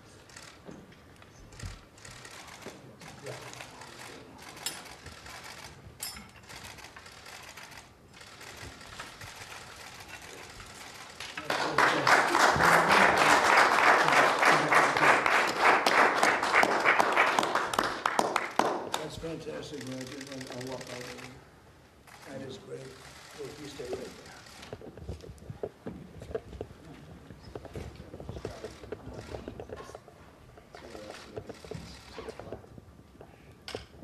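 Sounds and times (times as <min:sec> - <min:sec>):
people applauding: 0:10.3 - 0:19.2.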